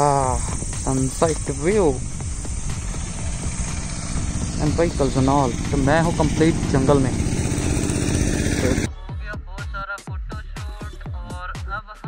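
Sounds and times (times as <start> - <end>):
vehicle engine running: 0.0 - 8.9
electronic music: 0.0 - 9.4.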